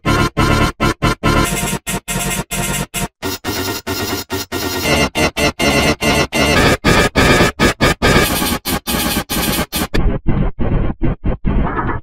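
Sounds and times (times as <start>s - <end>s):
pitch-shifted noisy music and effects: 0.0s - 12.0s.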